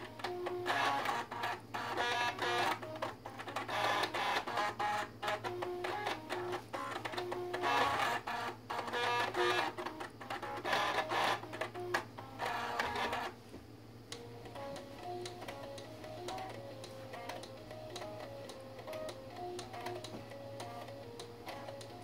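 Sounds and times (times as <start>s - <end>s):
floppy drive motors buzzing melody: 0.0s - 13.4s, 14.1s - 22.0s
steady low hum: 0.0s - 22.0s.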